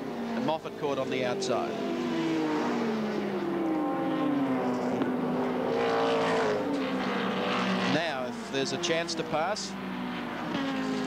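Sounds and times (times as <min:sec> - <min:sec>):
race cars passing at speed: 0:00.0 - 0:11.0.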